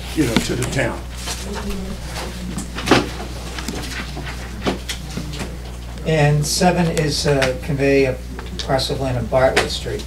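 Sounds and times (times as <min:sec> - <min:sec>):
paper rustling and crinkling: 0:00.0 - 0:05.5
electrical hum: 0:00.0 - 0:10.0.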